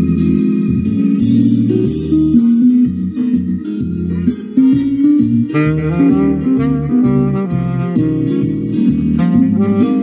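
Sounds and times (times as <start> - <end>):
backing track with guitar: 0.0 - 10.0
tenor saxophone melody: 5.4 - 10.0.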